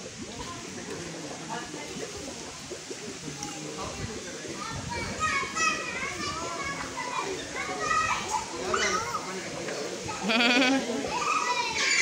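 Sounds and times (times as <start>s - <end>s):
children chattering excitedly: 0.0s - 12.0s.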